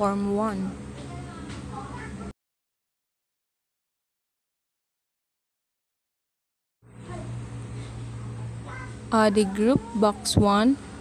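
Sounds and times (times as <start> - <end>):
low electrical hum: 0.0 - 2.3, 6.8 - 11.0.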